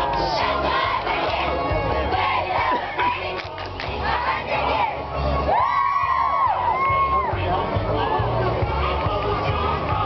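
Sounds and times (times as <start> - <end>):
crowd noise: 0.0 - 10.0
music with steady bass beat: 0.0 - 10.0.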